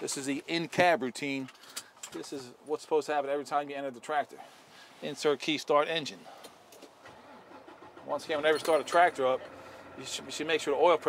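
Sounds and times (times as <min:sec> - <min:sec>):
diesel engine cranking and starting: 0:06.9 - 0:11.0.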